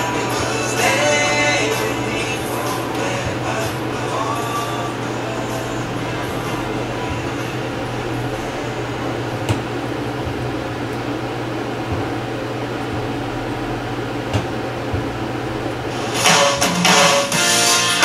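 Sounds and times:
steady low hum: 0.0s - 18.0s
swing guitar music: 0.0s - 18.0s.

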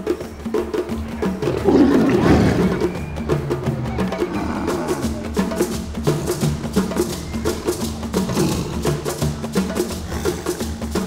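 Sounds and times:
background music with percussion beat: 0.0s - 11.0s
lion growling: 1.4s - 3.0s, 3.7s - 5.5s, 8.2s - 9.2s, 10.0s - 10.8s.

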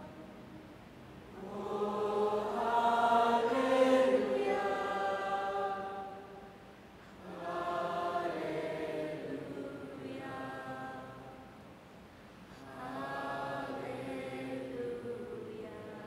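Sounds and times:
congregation singing: 0.0s - 0.4s, 1.3s - 11.6s, 12.5s - 16.0s.

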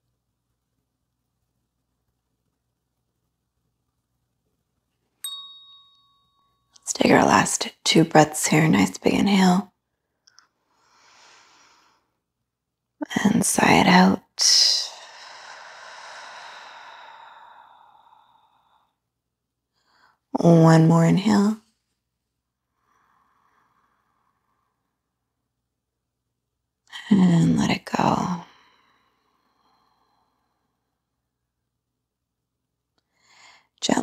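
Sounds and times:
bright chime ringing: 5.2s - 6.4s.

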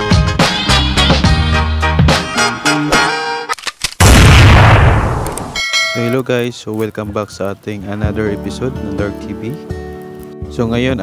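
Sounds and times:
loud boom hit: 4.0s - 5.6s
short bell-like chime: 5.6s - 6.2s.

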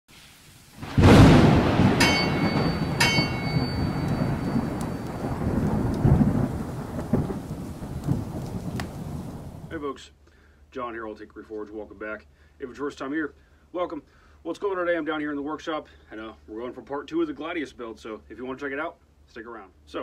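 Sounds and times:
steady rain: 0.1s - 9.8s
loud thunderclap: 0.8s - 9.7s
ringing clangs: 1.8s - 5.8s.

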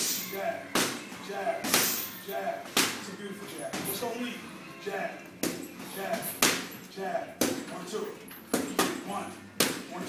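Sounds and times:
boxing gloves hitting mitts: 0.0s - 3.1s, 5.4s - 6.8s, 7.4s - 7.8s, 8.5s - 10.0s.

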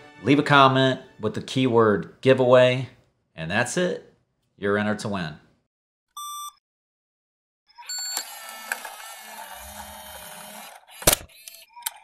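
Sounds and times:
short electronic beep: 6.2s - 6.6s
mechanical whirr: 8.1s - 12.0s
sharp loud click: 11.0s - 11.3s.

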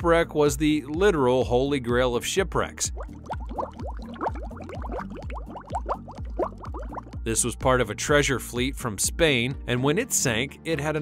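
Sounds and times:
underwater bubbling: 2.8s - 7.2s.

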